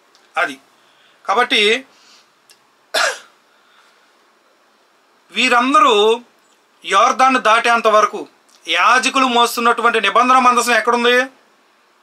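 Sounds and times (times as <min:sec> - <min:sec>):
man coughing: 0:03.0 - 0:03.4.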